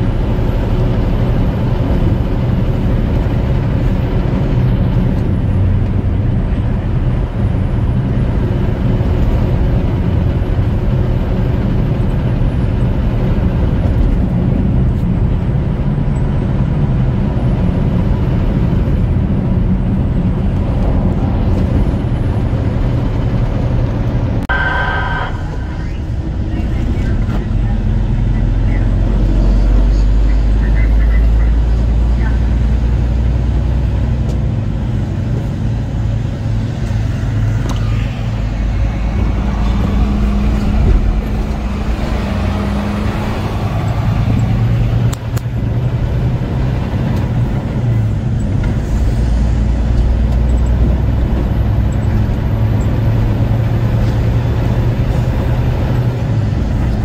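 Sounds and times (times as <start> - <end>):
truck engine and road noise: 0.0 - 57.0.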